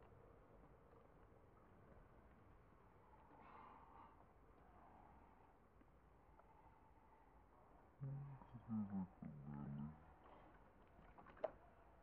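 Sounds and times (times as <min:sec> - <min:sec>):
faint background noise: 0:00.0 - 0:12.0
woman humming: 0:08.0 - 0:09.4.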